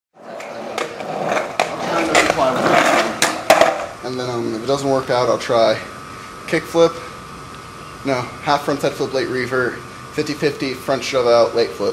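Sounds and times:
skateboard wheels clicking over cracks: 0:00.2 - 0:03.9
skateboard wheels rolling on pavement: 0:00.2 - 0:04.0.

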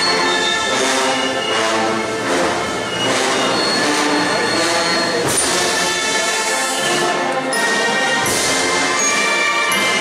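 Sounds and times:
brass band music with held chords: 0:00.0 - 0:10.0.

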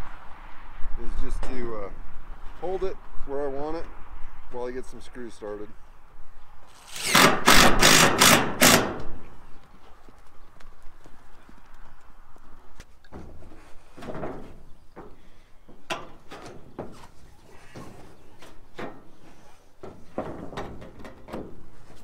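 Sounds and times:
knocks on metal roofing: 0:13.2 - 0:17.0, 0:19.8 - 0:21.6.

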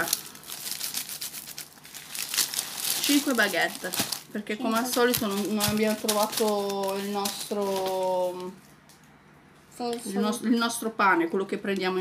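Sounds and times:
plastic wrapping crinkling: 0:00.0 - 0:08.7.

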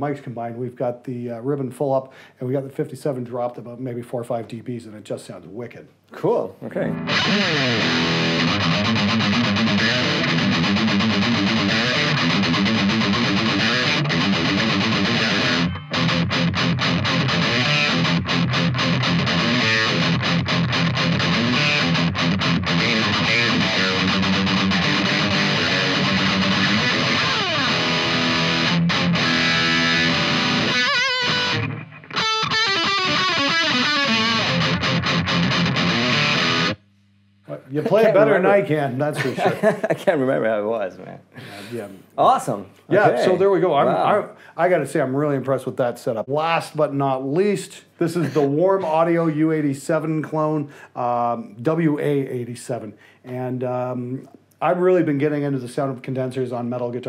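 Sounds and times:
distorted electric guitar riffs: 0:06.7 - 0:38.6.

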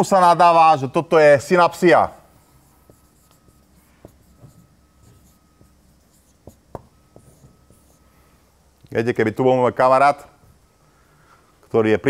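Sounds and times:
marker pen writing on whiteboard: 0:02.4 - 0:08.1.

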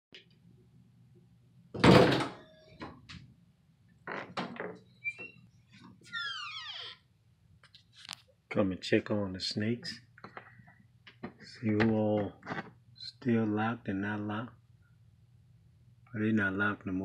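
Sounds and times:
door squeak: 0:04.1 - 0:05.5, 0:06.1 - 0:07.0.

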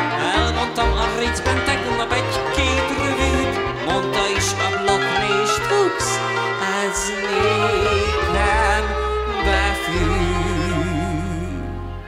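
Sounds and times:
violin with sliding notes: 0:00.0 - 0:12.0
bass notes pulse: 0:07.4 - 0:12.0.

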